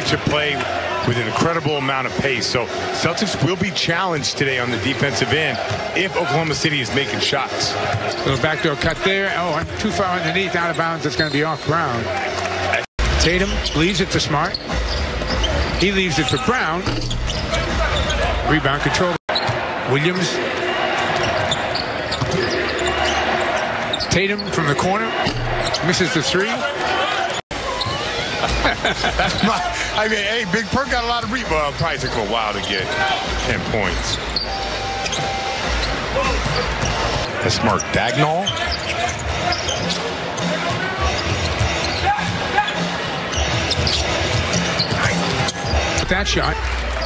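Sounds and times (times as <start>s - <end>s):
arena background noise: 17.3s - 47.0s
background music: 27.6s - 37.7s.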